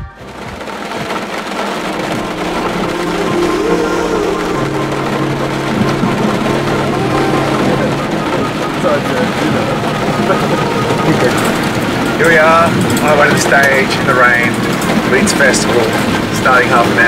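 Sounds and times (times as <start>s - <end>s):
car engine humming: 0.0s - 17.0s
rain on a car: 0.0s - 17.0s.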